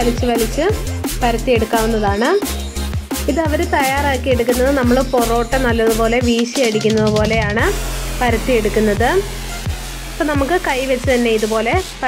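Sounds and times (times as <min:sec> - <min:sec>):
gliding melody: 0:06.7 - 0:08.3
deep bass hits: 0:06.8 - 0:09.3.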